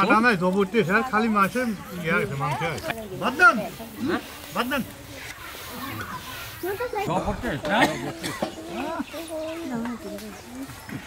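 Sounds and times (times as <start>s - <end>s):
men's voices: 0.0s - 5.2s, 7.0s - 9.3s.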